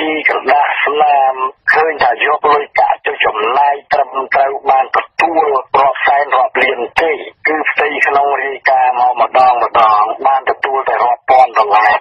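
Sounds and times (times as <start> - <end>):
person reading the news: 0.0 - 12.0.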